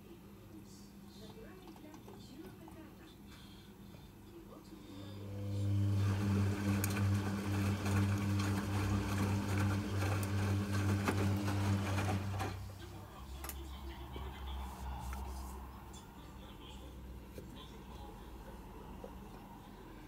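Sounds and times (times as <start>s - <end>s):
washing machine motor hum: 4.4s - 20.0s
laundry and water swishing: 5.6s - 12.8s.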